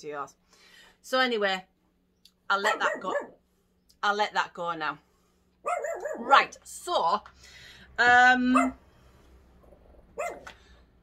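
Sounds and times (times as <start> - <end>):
dog barking: 2.6 - 3.4, 5.6 - 6.4, 8.5 - 8.8, 10.2 - 10.5.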